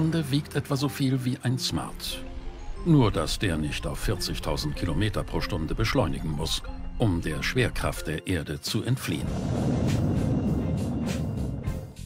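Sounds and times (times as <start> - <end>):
documentary background music: 0.0 - 12.0
low vehicle rumble: 9.2 - 12.0.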